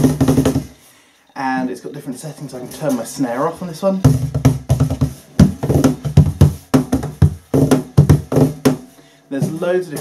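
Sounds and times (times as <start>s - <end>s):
cajon played by hand: 0.0s - 0.8s, 4.0s - 10.0s.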